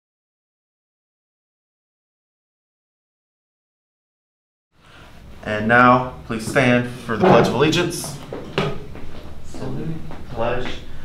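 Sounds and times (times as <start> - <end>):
chairs and desk knocking: 6.3 - 10.3.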